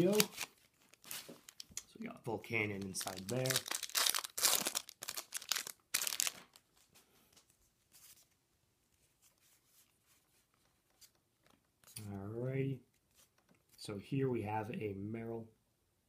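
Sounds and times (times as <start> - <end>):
foil wrapper tearing and crinkling: 0.0 - 1.8, 2.6 - 6.6
cards being leafed through: 0.0 - 1.9, 2.6 - 6.6.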